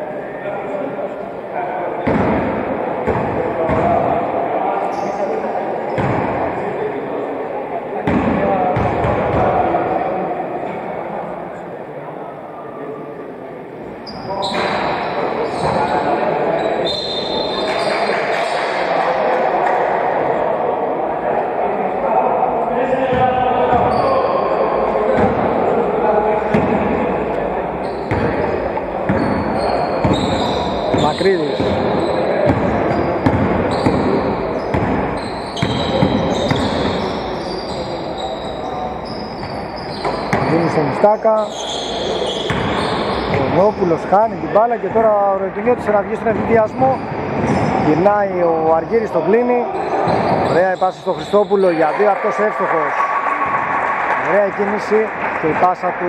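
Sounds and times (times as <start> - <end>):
players calling out: 14.0 - 56.0.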